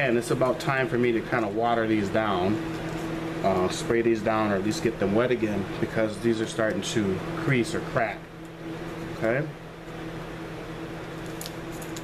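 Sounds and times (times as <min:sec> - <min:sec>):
electric fan humming: 0:00.0 - 0:12.0.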